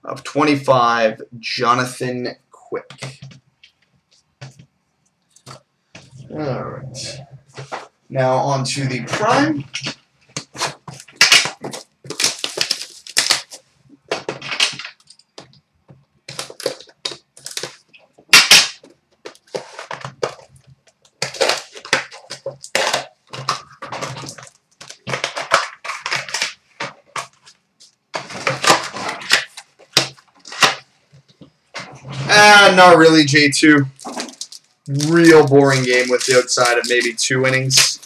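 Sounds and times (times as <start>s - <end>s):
cardboard being handled: 8.7s - 14.9s, 33.8s - 38.0s
plastic wrap crinkling and tearing: 8.7s - 15.3s, 16.3s - 30.9s, 32.2s - 38.0s.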